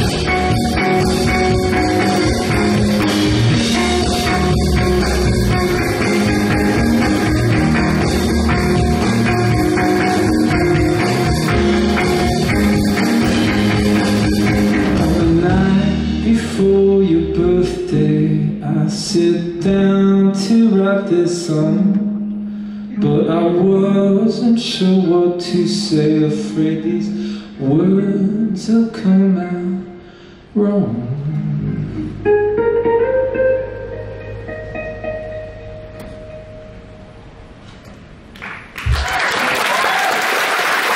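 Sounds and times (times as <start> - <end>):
acoustic guitar picking notes: 0.0 - 17.5, 31.4 - 37.7
person singing: 0.0 - 22.2.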